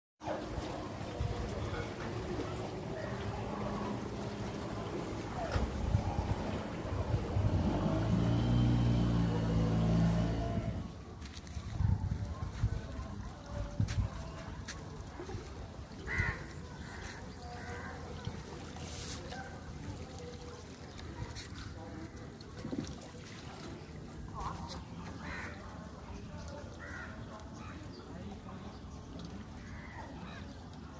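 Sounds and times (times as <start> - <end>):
water splashing and dripping: 0.2 - 30.9
small boat engine passing: 0.3 - 11.5, 16.9 - 27.2.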